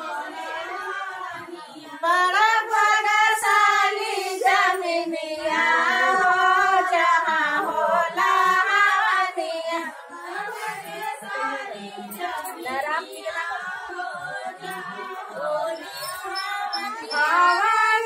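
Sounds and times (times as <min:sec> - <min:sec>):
women singing devotional song: 0:00.0 - 0:18.0.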